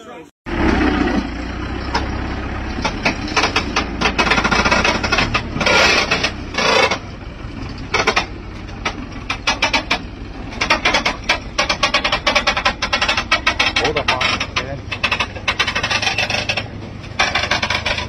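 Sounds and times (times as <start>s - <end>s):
truck diesel engine running low: 0.5s - 18.0s
clatter of knocks and rattles: 1.4s - 18.0s.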